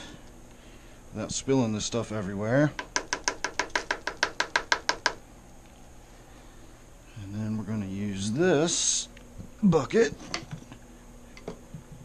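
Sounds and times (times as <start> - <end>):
fast series of sharp knocks: 2.8 - 5.2.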